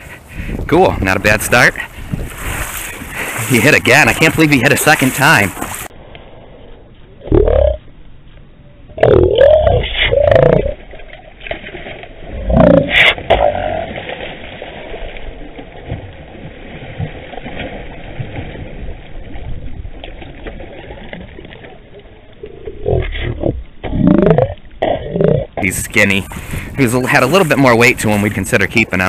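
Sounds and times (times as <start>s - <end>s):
fish thrashing and splashing: 2.0s - 5.9s, 13.2s - 22.0s, 26.1s - 28.5s.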